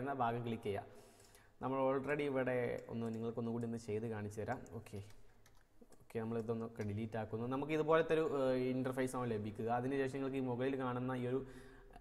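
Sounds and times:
keyboard keystrokes and clicks: 2.6 - 7.2.

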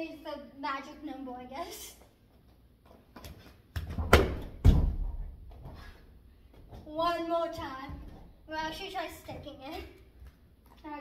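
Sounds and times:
light footfalls: 2.8 - 10.4.

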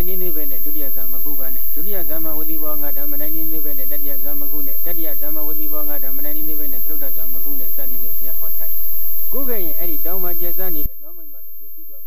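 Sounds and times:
monk reciting in sing-song chant: 0.0 - 8.7, 9.3 - 12.0.

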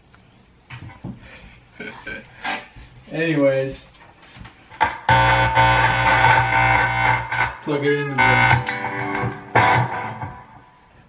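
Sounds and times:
electric guitar chord ringing: 4.8 - 11.0.

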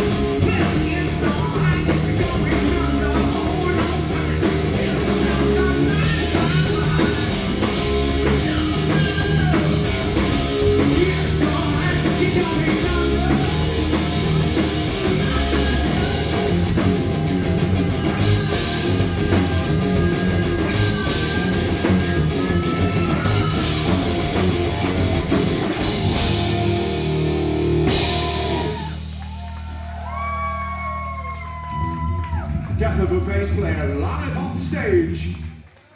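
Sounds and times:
live rock band playing: 0.0 - 32.6
bending guitar notes: 13.1 - 29.1.

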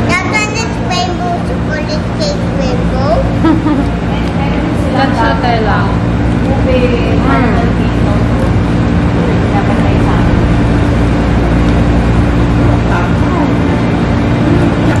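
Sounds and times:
faint voices: 0.0 - 15.0
low machine hum: 0.0 - 15.0.

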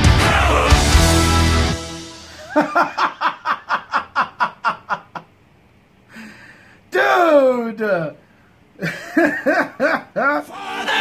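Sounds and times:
music with sustained notes: 0.0 - 2.5
person laughing: 2.3 - 5.4, 8.8 - 11.0.

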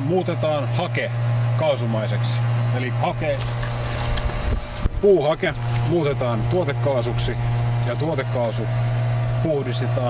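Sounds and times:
steady low hum: 0.0 - 10.0
wind and handling on microphone: 3.3 - 6.5.

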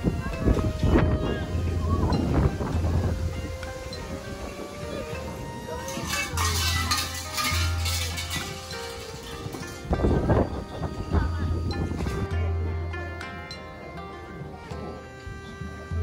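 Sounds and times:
background music: 0.0 - 16.0
metal shrine bell rattling: 5.7 - 10.9.

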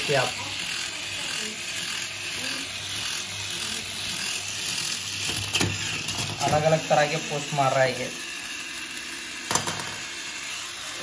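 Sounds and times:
toy motor and gears whirring: 0.0 - 11.0.

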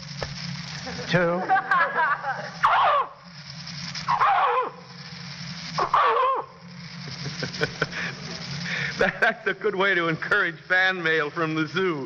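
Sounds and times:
man imitating animal cries: 5.8 - 6.5.

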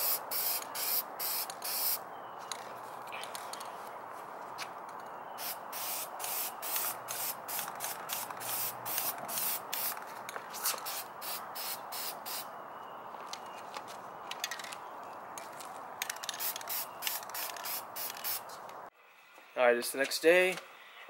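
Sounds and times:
spray paint can hissing bursts: 0.0 - 2.0, 5.4 - 10.0, 10.6 - 12.5, 16.2 - 18.5.

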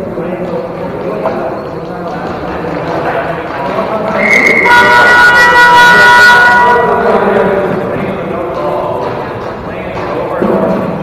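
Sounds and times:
loud multi-pitch signal horn: 4.2 - 7.2.

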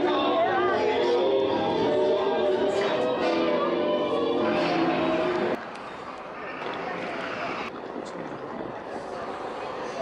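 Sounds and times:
music: 0.0 - 5.6.

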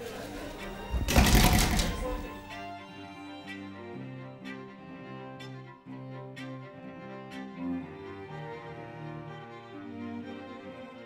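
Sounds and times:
double doors clattering shut: 0.4 - 2.4.

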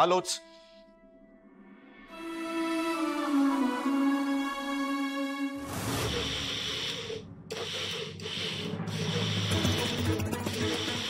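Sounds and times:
blender motor running: 6.3 - 10.1.

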